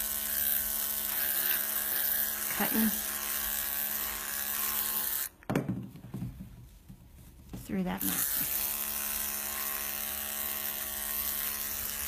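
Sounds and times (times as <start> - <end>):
electric clippers buzzing: 0.0 - 5.4, 7.9 - 12.0.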